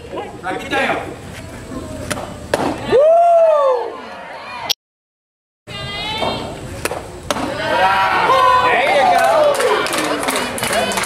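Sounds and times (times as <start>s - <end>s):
loud drawn-out shout: 2.8s - 4.7s, 7.5s - 10.0s.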